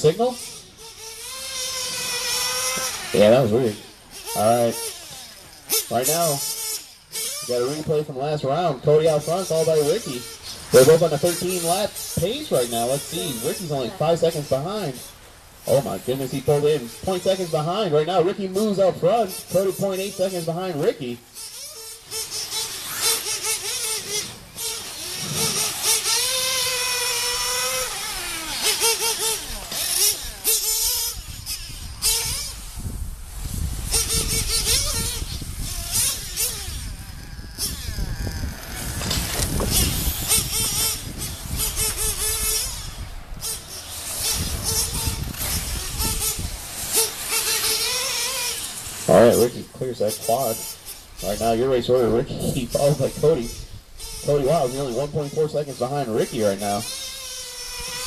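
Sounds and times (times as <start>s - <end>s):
model truck nitro engine revving: 0.0s - 58.0s.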